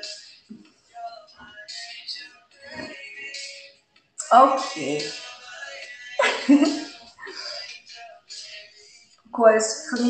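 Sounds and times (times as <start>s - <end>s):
woman laughing: 6.2s - 7.6s.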